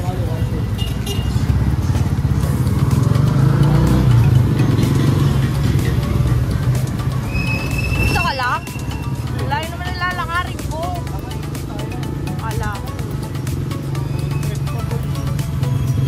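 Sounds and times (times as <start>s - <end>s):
road and wind rumble: 0.0s - 16.0s.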